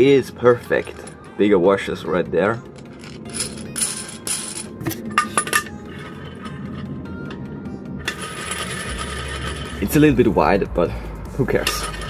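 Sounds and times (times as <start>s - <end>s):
metal washers clinking: 0.4s - 1.3s, 2.7s - 7.4s, 8.0s - 9.9s, 11.5s - 12.0s.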